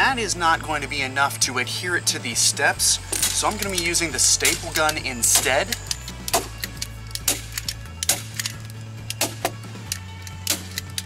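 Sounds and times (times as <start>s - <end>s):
soft background music: 0.0s - 11.0s
staple gun snaps: 4.4s - 11.0s.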